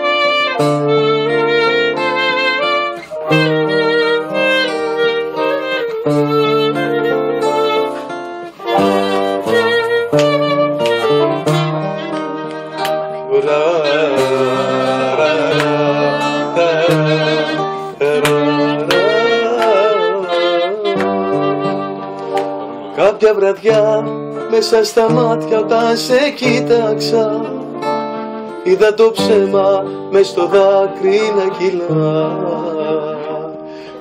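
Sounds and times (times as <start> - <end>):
acoustic guitar playing: 0.0 - 34.0.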